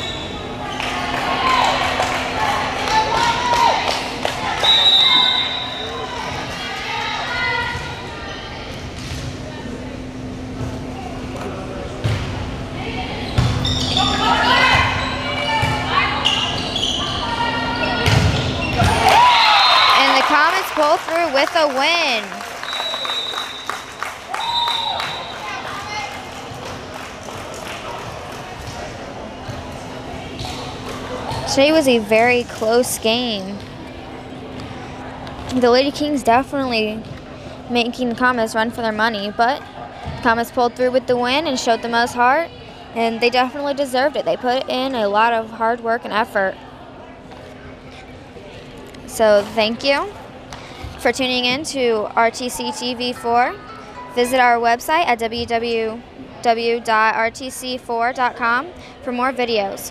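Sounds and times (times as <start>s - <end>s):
sneakers squeaking: 0.0s - 26.9s, 27.9s - 37.4s
short whistle blasts: 4.6s - 5.9s
volleyball contacts: 13.3s - 25.6s.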